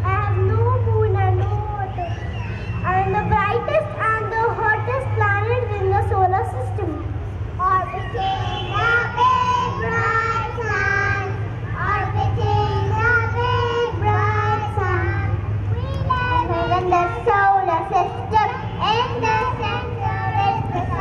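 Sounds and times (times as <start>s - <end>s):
child singing into a microphone: 7.6s - 21.0s.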